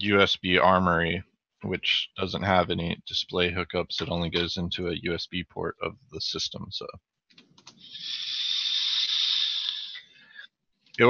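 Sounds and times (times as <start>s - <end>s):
breath drawn through mouthpiece: 7.8s - 10.1s.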